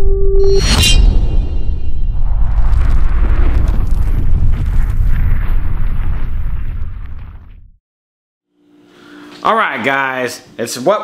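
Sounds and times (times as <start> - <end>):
deep rumbling explosion: 0.7 - 7.8.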